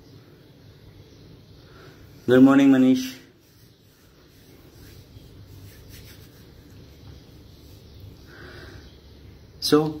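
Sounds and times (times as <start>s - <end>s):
hands rubbing and rustling: 3.4s - 8.3s.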